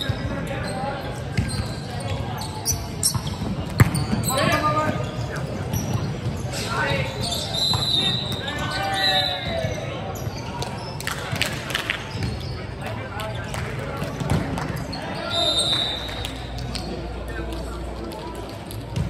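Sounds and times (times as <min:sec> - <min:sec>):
sneaker squeaks on hardwood court: 0:00.0 - 0:11.0
players shouting and calling: 0:03.9 - 0:10.4.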